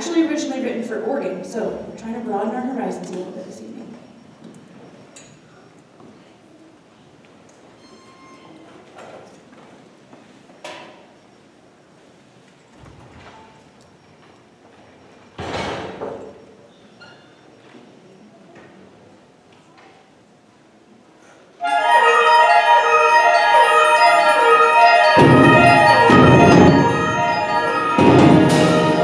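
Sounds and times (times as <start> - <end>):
footsteps in a hall: 8.6 - 11.0, 21.6 - 29.0.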